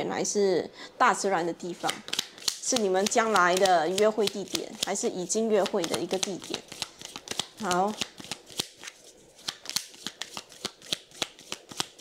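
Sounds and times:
cards being shuffled: 1.7 - 12.0.

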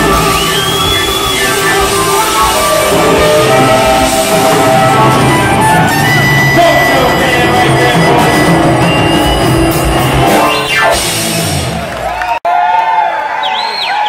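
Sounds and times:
rock band playing: 0.0 - 12.4
crowd cheering and whistling: 0.0 - 14.0.

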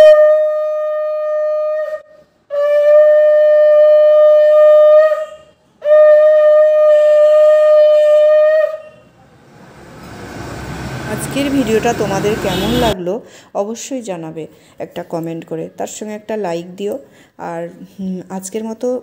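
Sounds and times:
conch shell blasts: 2.5 - 9.2.

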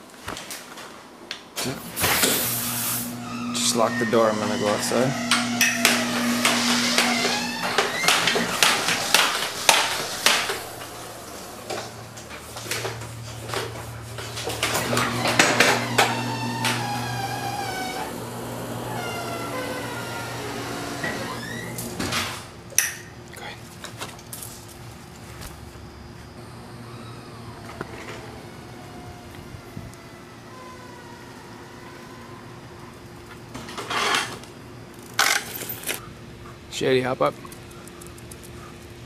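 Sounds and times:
wheelchair motor humming: 1.7 - 22.6, 26.4 - 35.8
high drawn-out whining tones: 1.9 - 22.3, 26.3 - 33.3
clattering and knocks: 5.3 - 11.0.

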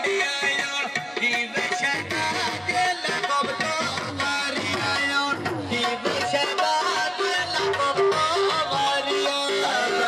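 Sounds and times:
drum accompaniment: 0.0 - 10.0.

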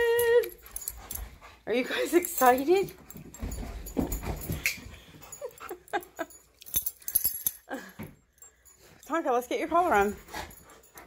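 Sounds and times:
dogs thumping and scuffling: 0.5 - 11.0.

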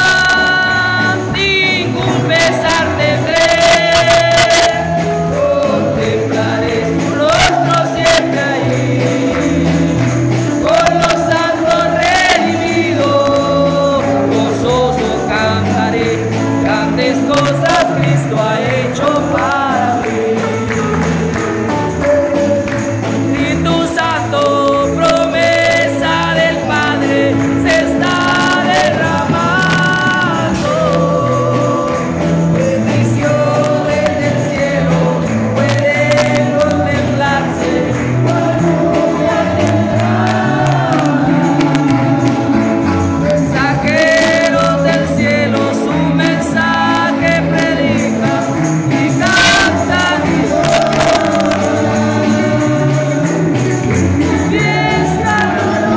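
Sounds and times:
church band playing: 0.0 - 55.9
guitar accompaniment: 0.0 - 55.9
men singing a hymn: 0.0 - 55.9
moving bass line: 0.0 - 55.9
tambourine jingling: 0.0 - 55.9.

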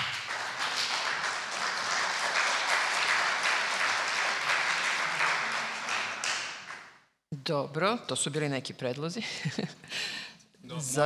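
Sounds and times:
audience applause: 0.0 - 6.9.

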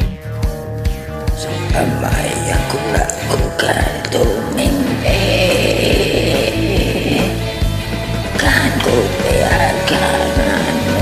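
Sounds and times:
electric guitar: 0.0 - 11.0
drum beat: 1.3 - 11.0.

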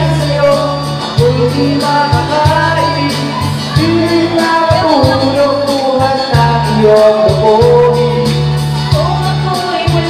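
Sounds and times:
backing track with bass beat: 0.0 - 10.0
man singing into microphone: 0.0 - 10.0.

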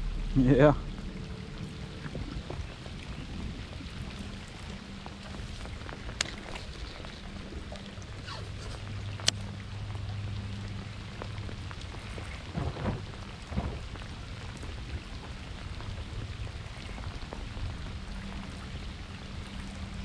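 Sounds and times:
low hum: 0.0 - 20.0
rain falling on water: 0.0 - 20.0.

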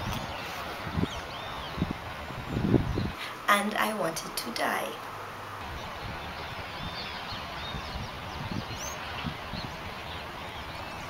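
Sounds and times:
birds chirping faintly: 0.0 - 11.0.

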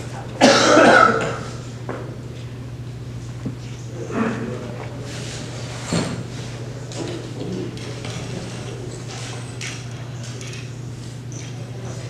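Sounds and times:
person coughing: 0.4 - 1.6.

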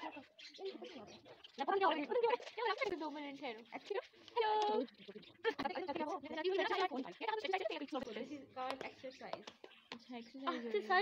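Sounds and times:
girls chattering: 0.0 - 11.0.

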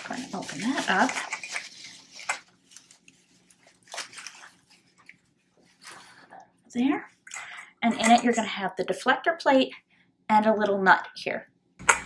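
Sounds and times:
bubble wrap crinkling: 0.0 - 6.2.

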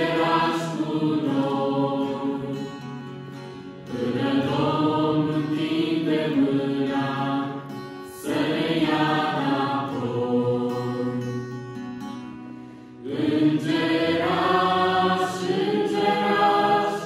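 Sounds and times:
choir singing: 0.0 - 3.1, 3.8 - 11.5, 13.0 - 17.0
acoustic guitar: 0.0 - 17.0.

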